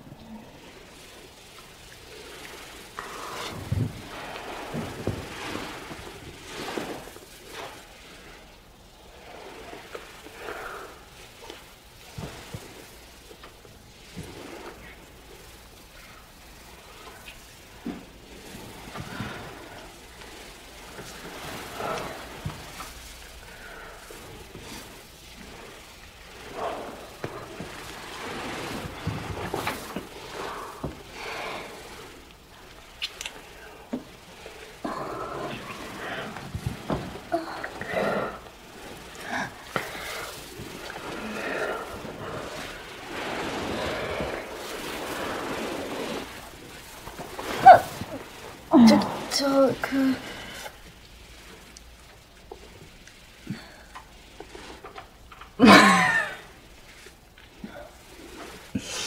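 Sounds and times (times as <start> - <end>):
people breathing heavily and sighing: 2.2 - 8.5, 9.2 - 13.4, 14.0 - 51.7, 53.3 - 55.0.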